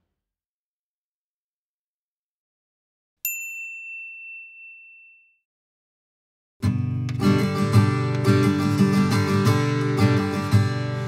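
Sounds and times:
high bell-like ding: 0:03.2 - 0:05.5.

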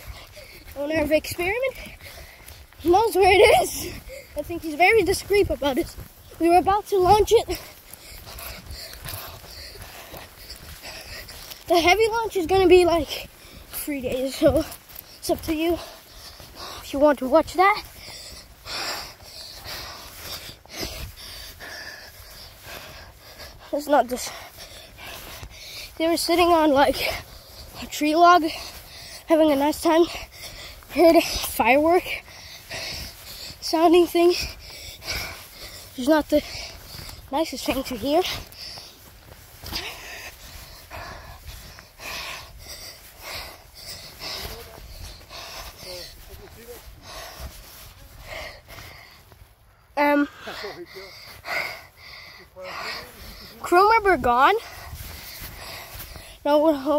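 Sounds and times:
person breathing hard: 0:00.0 - 0:56.9.

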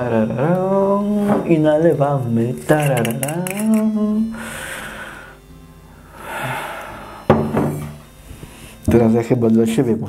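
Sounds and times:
bottle set down on wooden table: 0:07.3 - 0:08.0.

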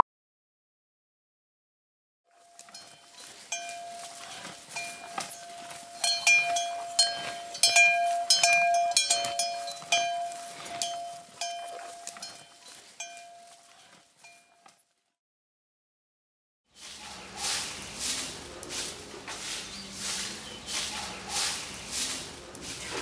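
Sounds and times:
small metal bells clinking: 0:02.3 - 0:14.7
steady ringing tone: 0:04.8 - 0:12.5.

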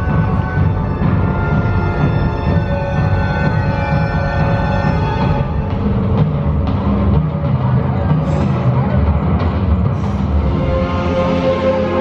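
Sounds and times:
dramatic music over loudspeakers: 0:00.0 - 0:12.0.

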